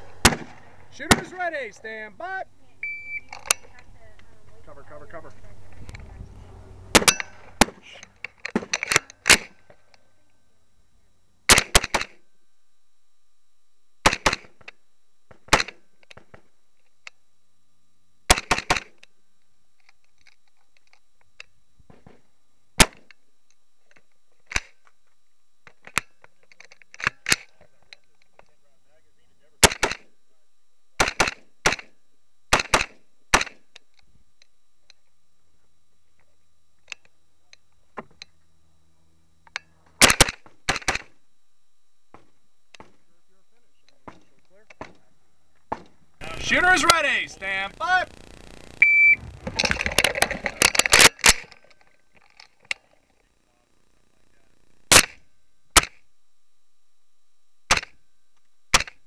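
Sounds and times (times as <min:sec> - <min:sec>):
rifle gunshots: 0:00.2 - 0:01.3.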